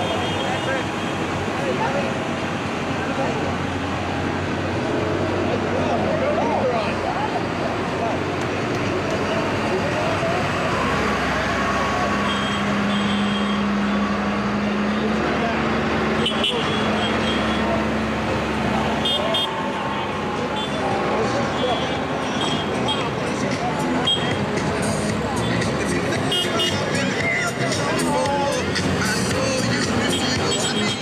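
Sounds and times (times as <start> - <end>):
chatter of street crowd: 0.0 - 31.0
diesel engines of wheel loaders: 0.0 - 31.0.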